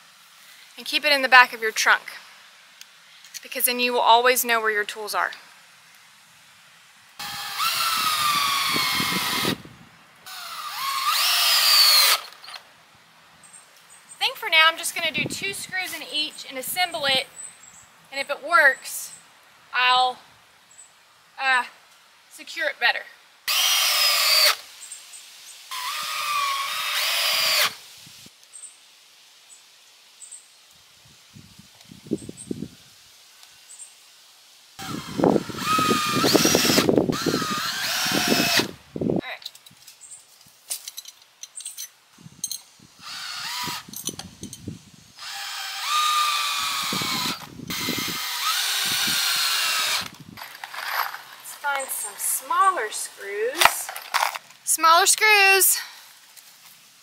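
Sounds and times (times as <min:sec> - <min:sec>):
cordless drill driving screws: 0:07.2 - 0:09.6, 0:10.3 - 0:12.6, 0:23.5 - 0:24.6, 0:25.7 - 0:27.8, 0:34.8 - 0:38.8, 0:43.0 - 0:43.9, 0:45.2 - 0:51.3.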